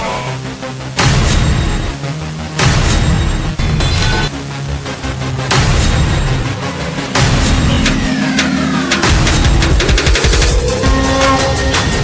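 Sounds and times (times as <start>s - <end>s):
dramatic background music: 0.0s - 12.0s
loud hit: 7.1s - 12.0s
descending whistle tone: 10.1s - 12.0s.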